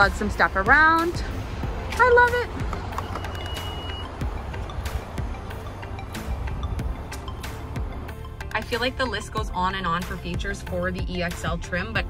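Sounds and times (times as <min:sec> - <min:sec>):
high warning beep: 0:03.0 - 0:04.1.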